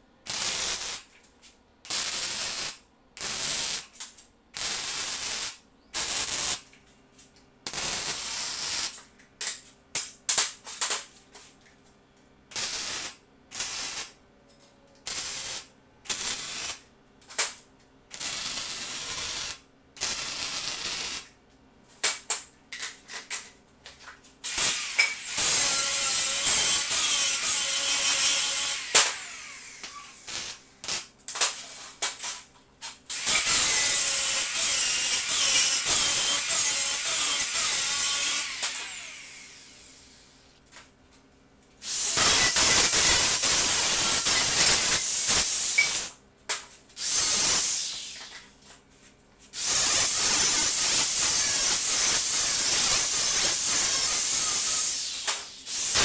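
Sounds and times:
grinder cutting steel: 24.5 - 31.0, 33.1 - 40.2, 41.9 - 46.1, 47.0 - 48.2, 49.6 - 56.0.

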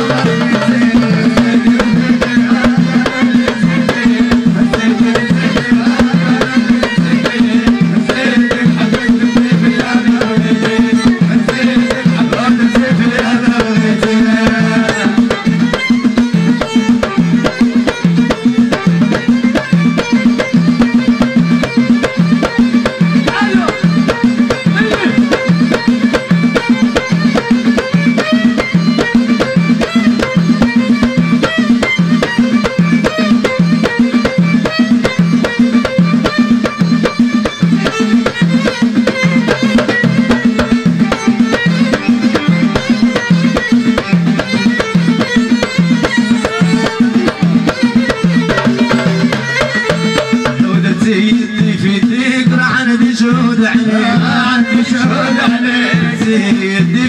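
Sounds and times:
hand drums beating fast rhythm: 0.0 - 57.0.

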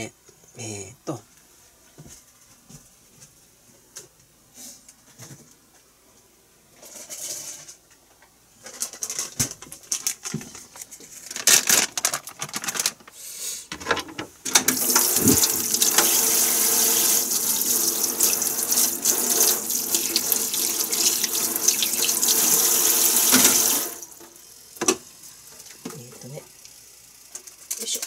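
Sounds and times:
tap running into sink: 14.6 - 24.0.

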